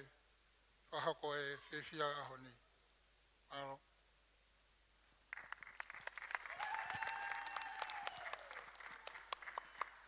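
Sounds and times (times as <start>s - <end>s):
people clapping: 5.3s - 10.0s.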